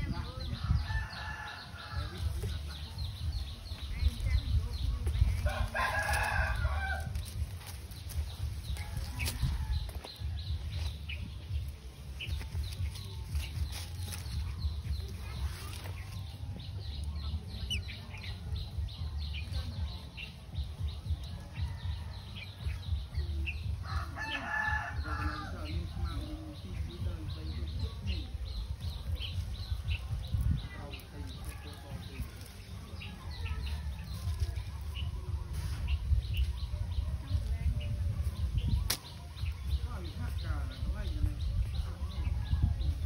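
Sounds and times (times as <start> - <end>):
steady low rumble: 0.0 - 24.2, 24.8 - 43.0.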